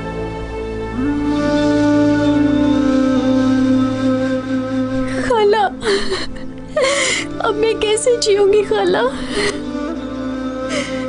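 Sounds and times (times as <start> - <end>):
sad music with sustained chords: 0.0 - 11.0
woman sobbing: 5.0 - 10.0.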